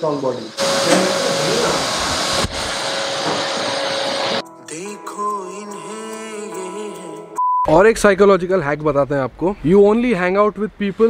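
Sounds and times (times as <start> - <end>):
electric blower rushing: 0.6 - 4.4.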